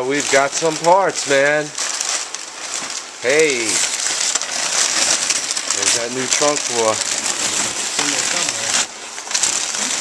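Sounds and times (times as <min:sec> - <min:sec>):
paper rustling and crinkling: 0:00.0 - 0:10.0.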